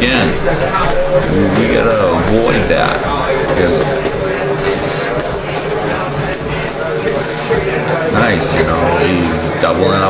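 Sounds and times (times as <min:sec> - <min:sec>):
faint voices: 0:00.0 - 0:10.0
steady background hum: 0:00.0 - 0:10.0.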